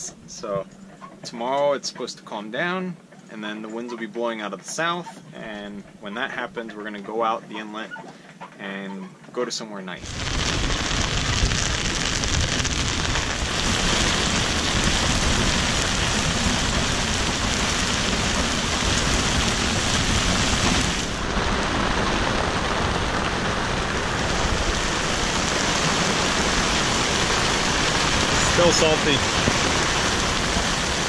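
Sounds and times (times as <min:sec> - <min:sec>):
gale-force wind: 0:10.0 - 0:31.0
heavy rain: 0:10.0 - 0:31.0.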